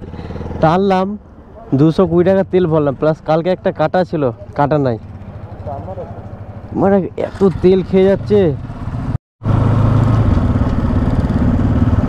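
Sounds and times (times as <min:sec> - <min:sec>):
man speaking: 0:00.6 - 0:08.6
motorcycle engine idling: 0:02.6 - 0:09.1.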